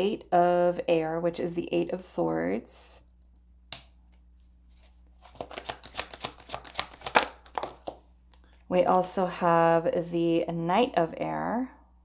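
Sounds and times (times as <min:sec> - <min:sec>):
cards shuffling clicks and rustles: 0:03.8 - 0:08.6.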